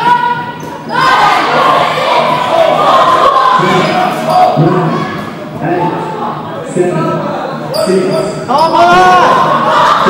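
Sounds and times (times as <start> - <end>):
players shouting: 0.0 - 6.4.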